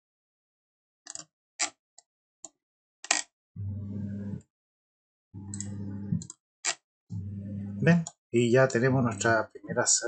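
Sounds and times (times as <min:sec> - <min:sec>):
computer mouse clicks: 0:05.5 - 0:06.8.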